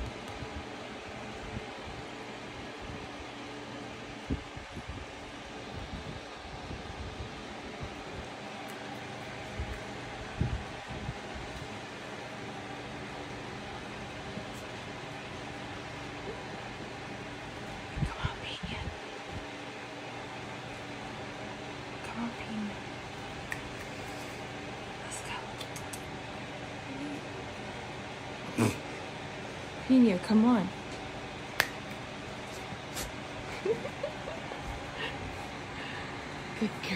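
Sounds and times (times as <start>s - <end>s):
low room noise: 0.0s - 36.9s.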